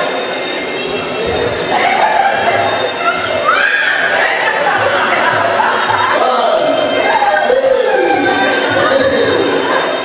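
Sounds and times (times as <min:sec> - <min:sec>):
high rising squeal: 0:00.0 - 0:10.0
people laughing and shrieking: 0:00.0 - 0:10.0.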